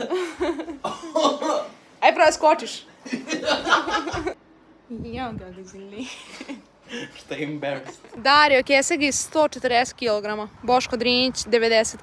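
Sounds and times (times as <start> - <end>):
man laughing: 0.0 - 1.7, 3.0 - 4.4, 6.0 - 8.2.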